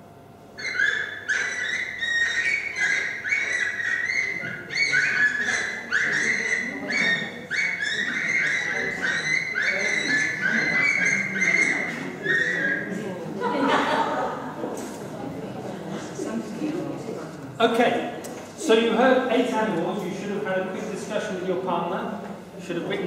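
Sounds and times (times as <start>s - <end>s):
recorded animal call over loudspeakers: 0.6s - 14.5s.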